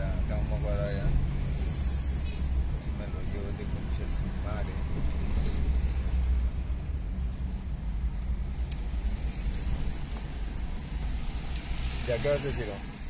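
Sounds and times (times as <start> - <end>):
car rumble from inside cabin: 0.0 - 13.0.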